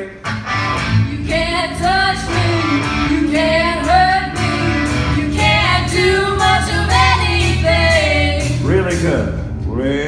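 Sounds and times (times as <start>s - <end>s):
electric guitars: 0.0s - 8.8s
drums: 0.0s - 10.0s
women singing in harmony: 1.0s - 8.6s.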